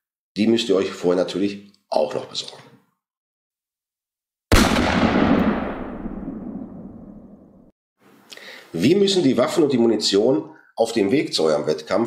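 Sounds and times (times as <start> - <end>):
loud bang with rumbling tail: 4.5 - 7.6.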